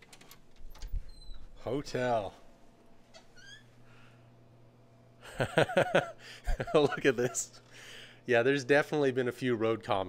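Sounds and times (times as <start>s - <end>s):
low room hum: 0.0s - 10.0s
door squeak: 0.6s - 1.6s, 3.1s - 3.7s.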